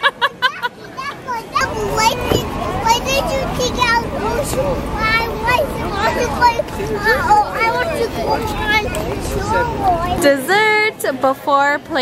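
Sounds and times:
outdoor background noise: 0.0s - 12.0s
toddlers babbling and squealing: 0.4s - 10.4s.

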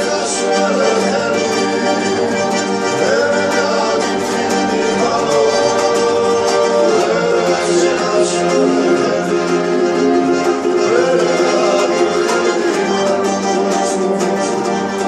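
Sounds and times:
accordion chords: 0.0s - 15.0s
man singing: 0.0s - 15.0s
strummed lute: 0.0s - 15.0s.

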